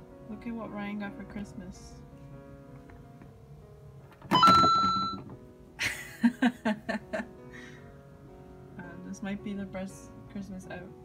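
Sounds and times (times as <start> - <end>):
two-note coin chime: 4.3 - 5.3.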